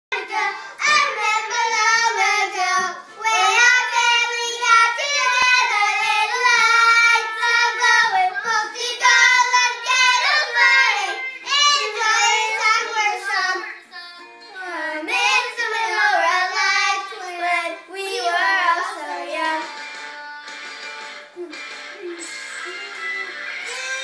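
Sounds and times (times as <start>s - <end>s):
children singing unaccompanied: 0.1s - 20.2s.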